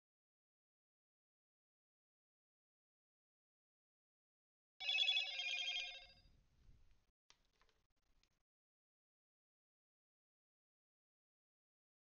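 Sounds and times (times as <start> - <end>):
electronic ringing tone: 4.8 - 6.2.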